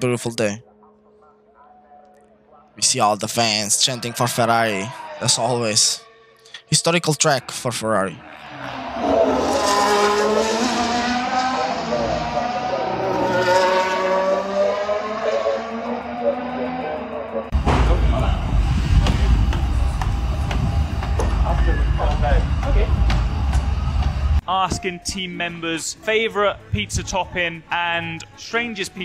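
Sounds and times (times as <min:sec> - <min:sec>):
race cars screaming past: 0:08.2 - 0:19.5
loud low rumble: 0:17.5 - 0:24.4.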